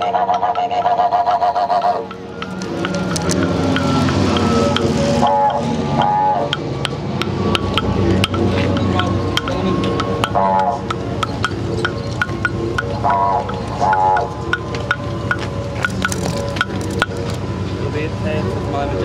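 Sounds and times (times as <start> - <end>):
didgeridoo drone: 0.0 - 19.0.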